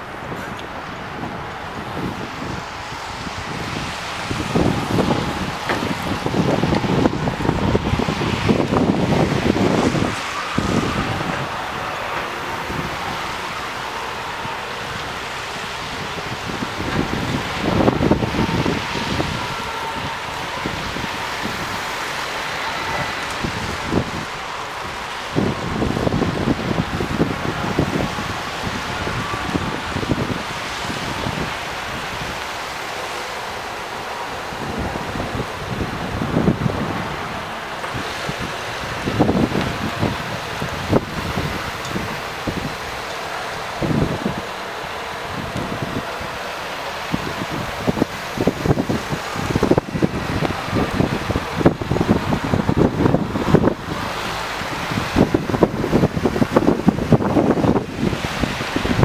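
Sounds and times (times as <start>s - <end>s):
vans driving on wet road: 0.0s - 59.0s
wind buffeting microphone: 0.0s - 59.0s.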